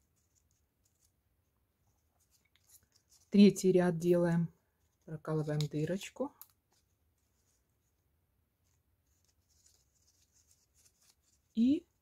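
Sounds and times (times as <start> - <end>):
light scratching and rustling: 1.8 - 3.6, 4.6 - 12.0.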